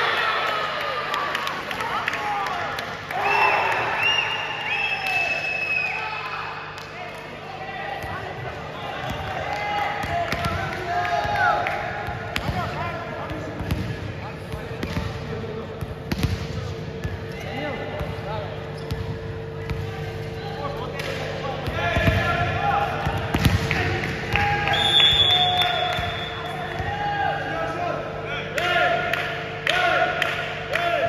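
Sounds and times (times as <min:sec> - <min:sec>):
steady hum: 0:00.9 - 0:31.0
volleyball bouncing on floor: 0:10.0 - 0:15.2, 0:15.8 - 0:17.2, 0:21.0 - 0:22.4, 0:23.0 - 0:26.9
shoe squeaks: 0:18.8 - 0:19.0.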